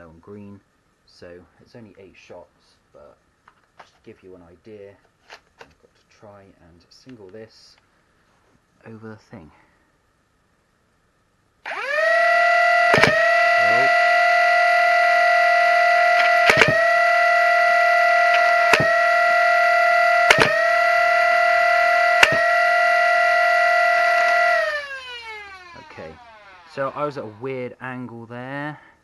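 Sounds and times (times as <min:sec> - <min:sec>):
toy blaster motors whining: 0:11.6 - 0:27.5
foam darts firing: 0:12.9 - 0:13.3, 0:18.7 - 0:19.0, 0:20.3 - 0:20.7.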